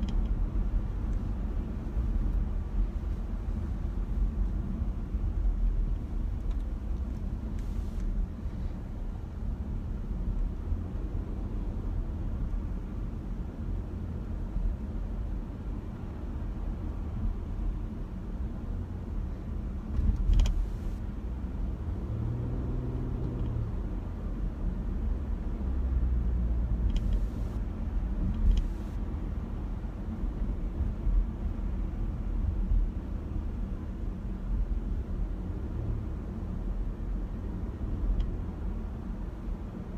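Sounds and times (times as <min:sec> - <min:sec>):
car cabin road and engine noise: 0:00.0 - 0:39.9.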